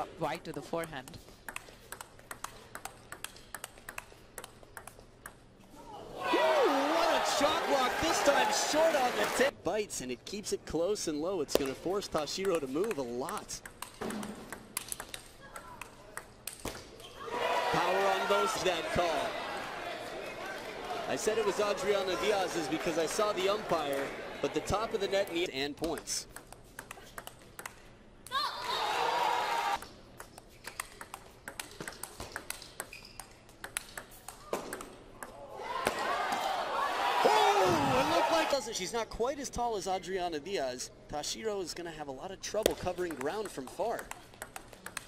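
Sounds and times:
table tennis ball ticks: 0:00.4 - 0:05.4, 0:11.5 - 0:16.6, 0:25.4 - 0:27.8, 0:29.8 - 0:35.3, 0:42.6 - 0:45.0
crowd voices: 0:17.2 - 0:25.4.

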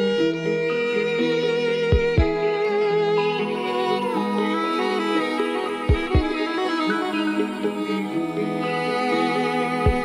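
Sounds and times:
bowed violin held notes: 0:00.0 - 0:10.0
deep bass thumps: 0:02.0 - 0:02.4.

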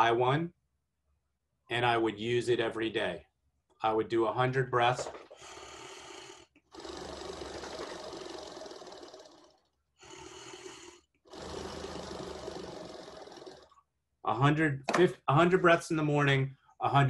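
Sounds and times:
vibrating out-breath through device: 0:05.0 - 0:13.8
breathing in: 0:05.3 - 0:13.8.

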